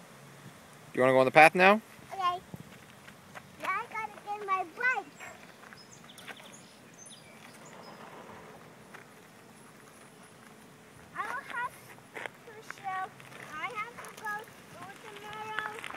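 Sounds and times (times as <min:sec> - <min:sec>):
child calling out: 0:11.2 - 0:11.8.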